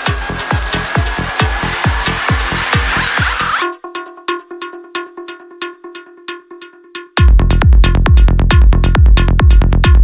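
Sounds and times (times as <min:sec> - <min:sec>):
steady pitched electronic tones: 0:00.0 - 0:07.1.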